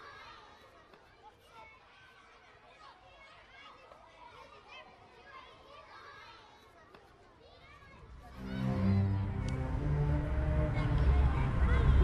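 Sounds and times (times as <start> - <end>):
distant children shouting at play: 0.0 - 12.0
music with low sustained notes: 8.4 - 12.0.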